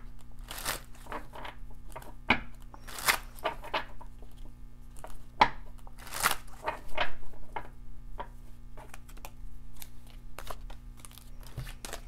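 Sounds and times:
cards being shuffled: 0:00.0 - 0:05.2, 0:05.8 - 0:07.0, 0:08.8 - 0:12.0.

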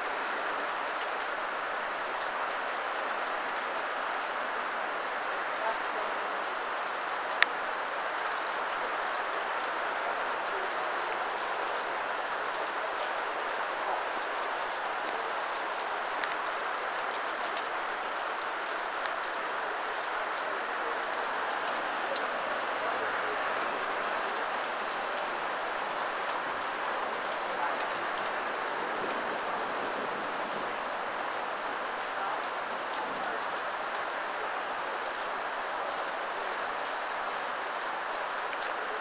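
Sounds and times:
heavy rain falling: 0:00.0 - 0:39.0.

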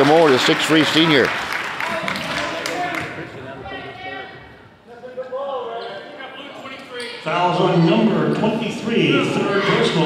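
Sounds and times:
echoing indistinct voices: 0:00.0 - 0:10.0.

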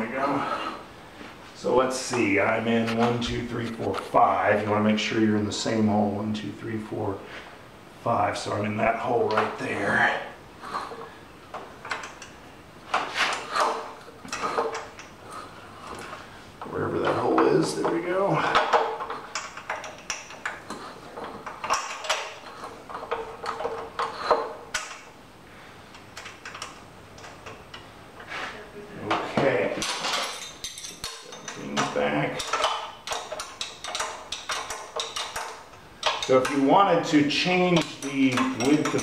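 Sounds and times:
metal parts clinking and rattling: 0:17.8 - 0:25.1, 0:29.7 - 0:36.6, 0:37.8 - 0:39.0.

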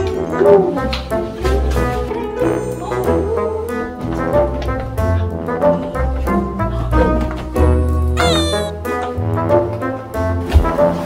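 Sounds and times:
background music: 0:00.0 - 0:11.0
cat meowing: 0:08.2 - 0:08.8.

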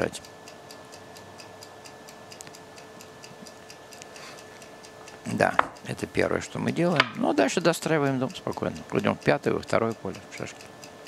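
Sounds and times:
faint electrical hum: 0:00.0 - 0:11.0
clock ticking quickly: 0:05.2 - 0:11.0.

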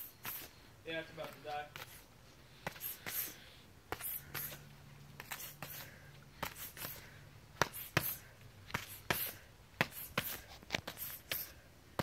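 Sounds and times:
punches slapping boxing gloves: 0:02.6 - 0:12.0.

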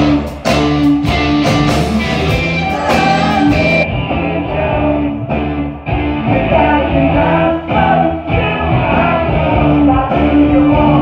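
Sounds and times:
live rock band playing: 0:00.0 - 0:11.0
lead vocal singing: 0:02.3 - 0:11.0.

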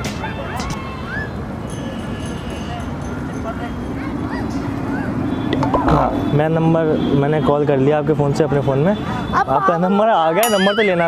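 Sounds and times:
outdoor crowd noise: 0:00.0 - 0:11.0
traffic noise: 0:00.0 - 0:11.0
dog yipping and whimpering: 0:04.0 - 0:05.2.

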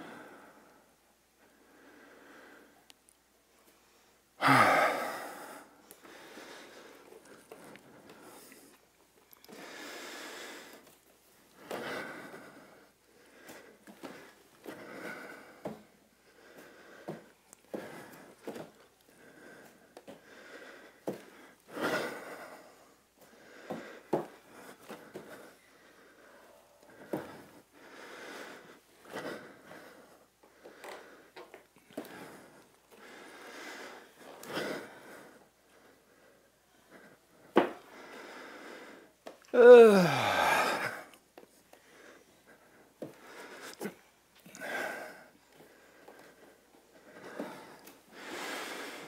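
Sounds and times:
person grunting: 0:04.4 - 0:05.4, 0:39.5 - 0:41.1
heavy breathing and gasps: 0:04.4 - 0:08.8, 0:11.6 - 0:41.2.

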